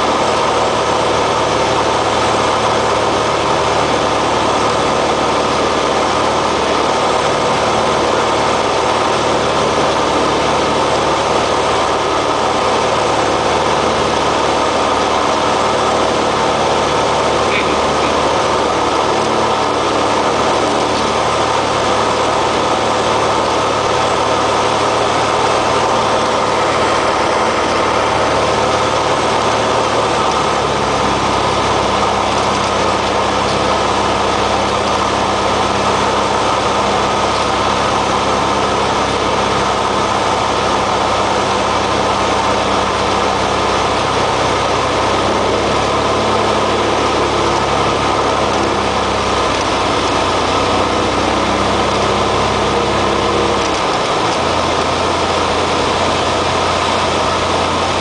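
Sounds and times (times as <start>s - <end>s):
airplane engine drone: 0.0s - 58.0s
airflow noise: 6.0s - 58.0s.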